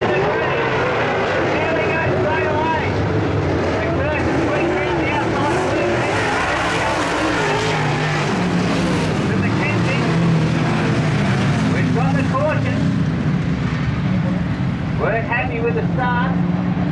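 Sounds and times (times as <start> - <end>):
voices: 0.0 - 8.3, 9.1 - 10.2, 11.6 - 12.9, 14.2 - 16.9
race car engines revving: 0.0 - 16.9.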